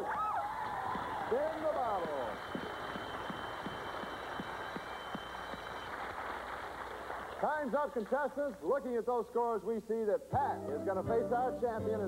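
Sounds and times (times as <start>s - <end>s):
vocal whoops: 0.0s - 3.4s
audience applauding: 0.0s - 8.6s.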